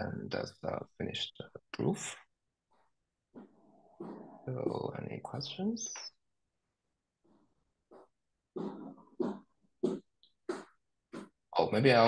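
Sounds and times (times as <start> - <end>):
person speaking: 0.0 - 2.3, 4.0 - 6.2.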